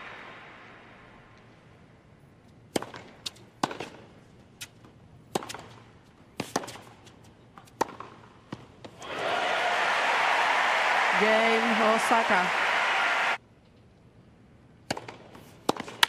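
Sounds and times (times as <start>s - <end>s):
tennis ball struck by rackets: 2.7s - 4.7s, 5.3s - 5.8s, 6.4s - 7.0s, 7.6s - 9.0s, 14.9s - 16.0s
tennis ball bouncing: 2.7s - 5.8s, 6.4s - 9.0s, 14.9s - 16.0s
crowd cheering and applause: 9.0s - 13.4s.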